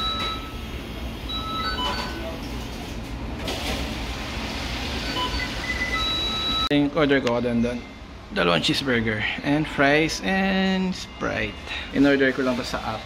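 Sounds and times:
short electronic beeps: 5.0s - 6.7s.

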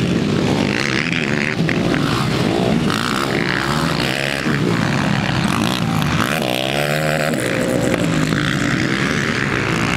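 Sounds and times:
quad bike engine revving: 0.0s - 9.9s.

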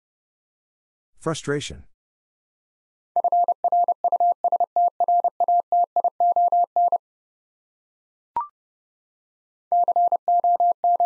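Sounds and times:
morse code beeps: 3.2s - 7.0s, 9.7s - 11.0s.

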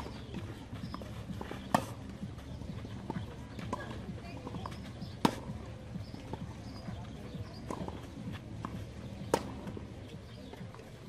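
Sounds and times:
tennis ball bounces: 0.0s - 11.0s.

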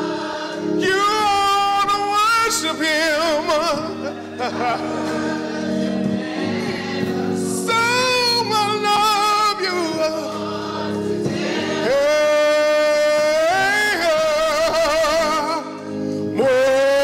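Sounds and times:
man singing gospel: 0.0s - 17.0s.

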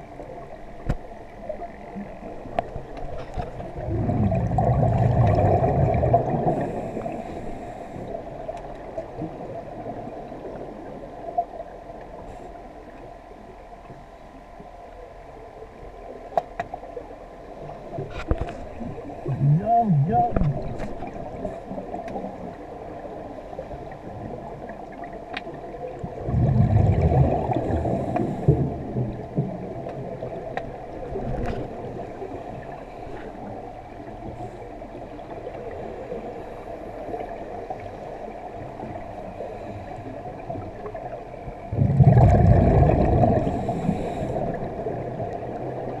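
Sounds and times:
underwater hum: 0.0s - 46.0s
diver exhaling bubbles: 3.7s - 7.2s, 26.2s - 29.2s, 41.7s - 45.0s.

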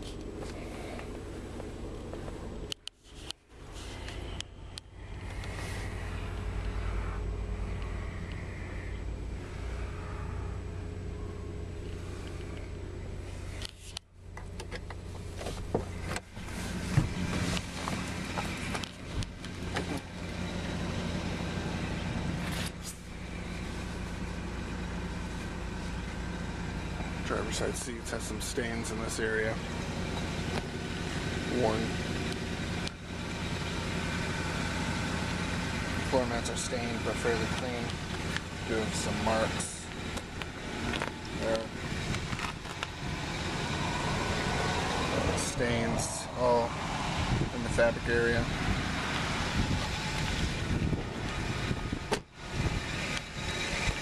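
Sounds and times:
car cabin low hum: 0.0s - 54.0s
low background rumble: 0.0s - 54.0s.

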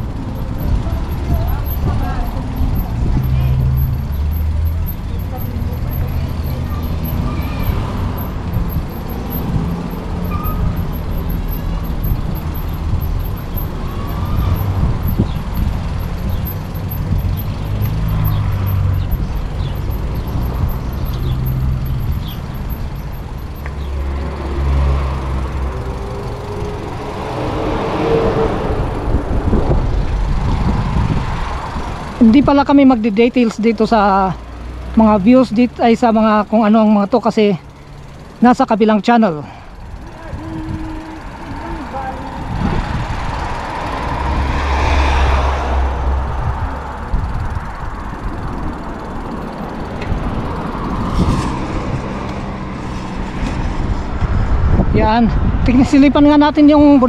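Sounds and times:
wind buffeting microphone: 0.0s - 24.0s, 25.3s - 32.7s, 39.8s - 44.6s, 45.3s - 57.0s
road traffic: 0.0s - 57.0s.

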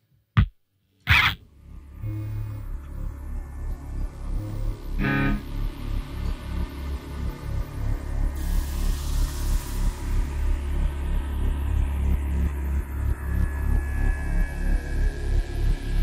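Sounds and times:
ringing guitar chord: 5.0s - 5.5s.

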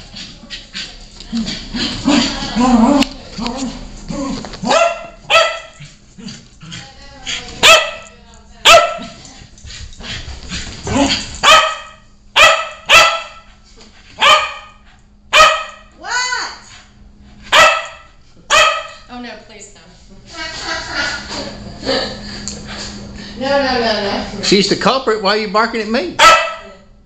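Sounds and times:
dog barking: 4.6s - 5.9s, 7.6s - 9.2s, 11.4s - 13.5s, 14.2s - 15.9s, 17.5s - 19.1s, 26.2s - 26.8s.

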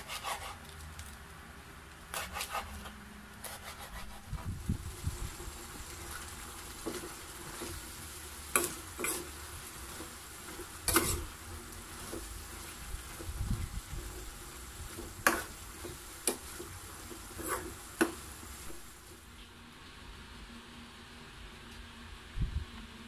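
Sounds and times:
vegetables sizzling in a pan: 4.0s - 19.4s.

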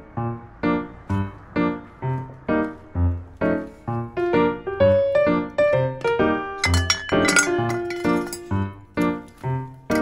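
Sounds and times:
piano background music: 0.0s - 10.0s
saucepan lid clinking on pot: 6.6s - 8.4s.

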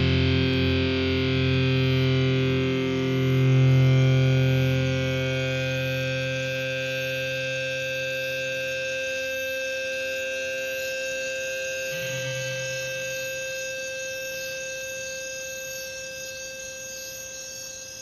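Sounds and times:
drone of held tones: 0.0s - 18.0s.

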